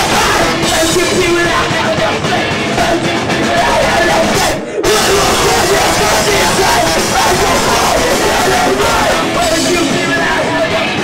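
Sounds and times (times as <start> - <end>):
distorted electric guitar: 0.0 - 11.0
drum kit: 0.0 - 11.0
live ska-core band playing: 0.0 - 11.0.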